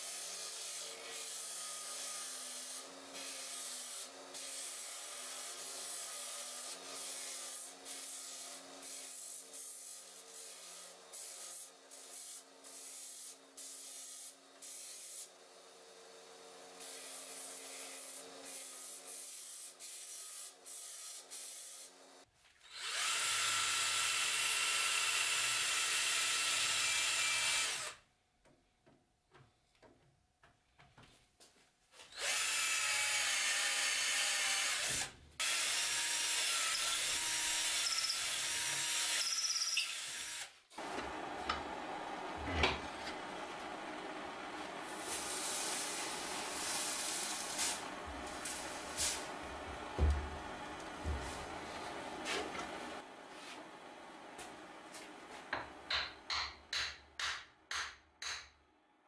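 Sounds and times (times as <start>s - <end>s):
power drill boring into wood: 22.7s - 28.0s, 32.2s - 40.5s
disc sander motor hum: 40.8s - 46.6s, 47.3s - 55.2s.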